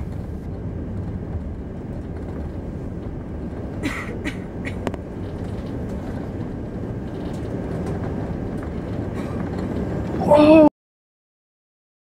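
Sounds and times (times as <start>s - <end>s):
jet airliner cabin noise: 0.0s - 10.7s.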